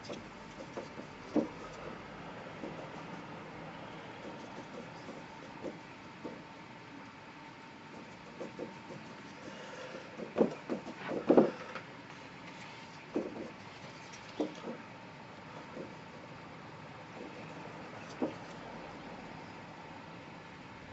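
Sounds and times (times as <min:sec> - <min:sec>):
loud knocks: 0:10.2 - 0:11.6.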